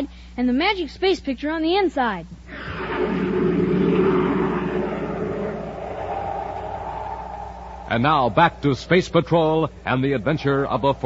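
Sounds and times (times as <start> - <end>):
rocket engine rushing noise: 2.5 - 8.9.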